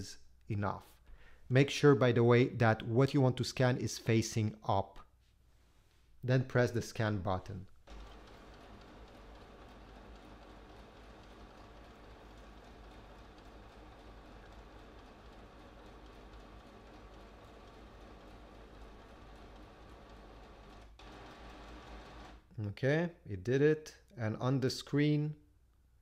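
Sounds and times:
scanner feed motor running: 0:07.9 - 0:22.4.

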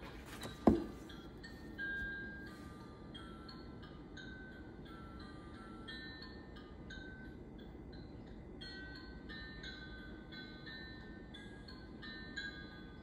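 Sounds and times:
bell-like chime music: 0:01.1 - 0:13.0.

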